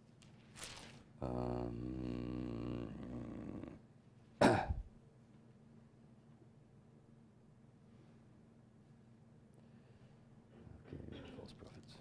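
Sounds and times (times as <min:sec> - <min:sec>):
paper rustling: 0:00.4 - 0:01.0
faint low voice-like sound: 0:01.2 - 0:03.8.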